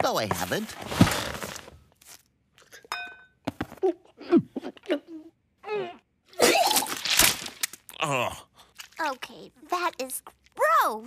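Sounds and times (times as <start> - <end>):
cartoon cat retching: 5.8 - 7.3.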